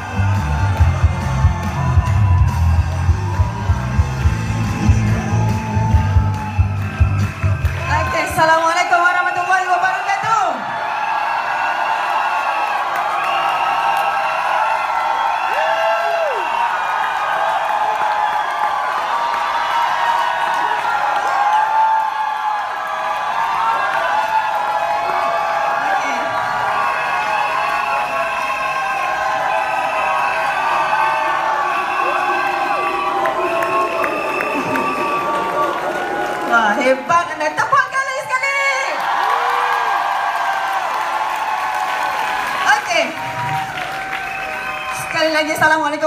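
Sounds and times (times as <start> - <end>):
loud music with held notes: 0.0 - 8.0
audience cheering and whooping: 0.0 - 45.9
shouts: 4.9 - 46.0.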